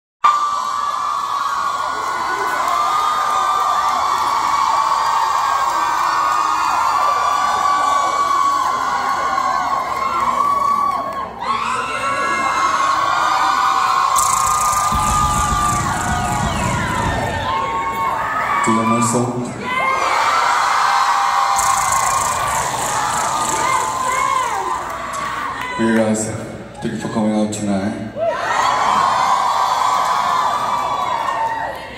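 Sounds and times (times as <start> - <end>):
crowd screaming and cheering: 0.2 - 31.9
low rumble: 14.2 - 18.0.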